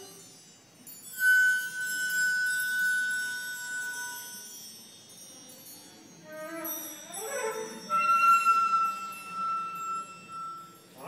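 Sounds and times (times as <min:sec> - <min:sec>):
chamber music: 0:00.0 - 0:11.0
chime-like shimmer and ringing note: 0:00.0 - 0:11.0
metallic percussion stroke: 0:05.3 - 0:11.0.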